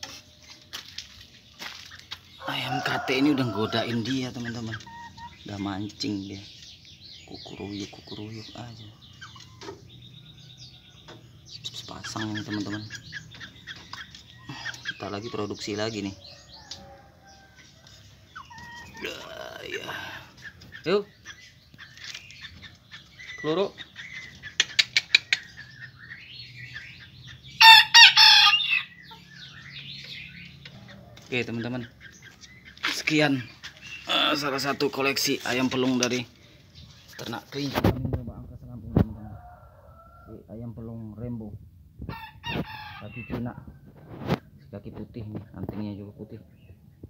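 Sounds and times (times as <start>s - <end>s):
rooster crowing: 2.4s - 3.9s, 27.6s - 28.9s.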